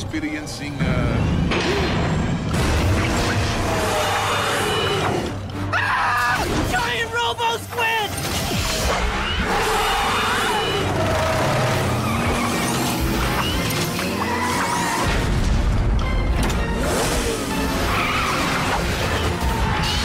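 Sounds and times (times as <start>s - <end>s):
dramatic background music: 0.0s - 20.0s
racing vehicle engine: 8.8s - 15.3s.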